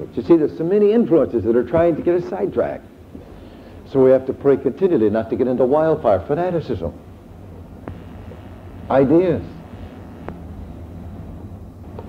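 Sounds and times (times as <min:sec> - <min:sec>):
cassette tape hum and hiss: 0:00.0 - 0:12.0.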